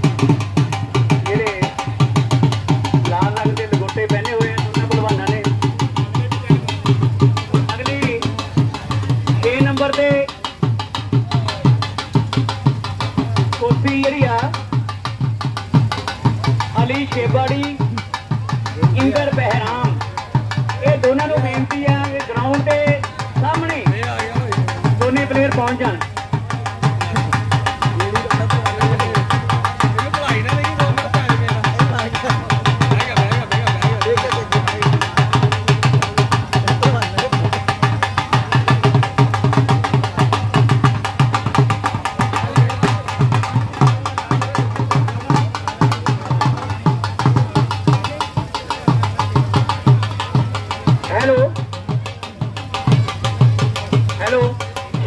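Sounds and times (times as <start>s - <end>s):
dhol drumming: 0.0s - 55.0s.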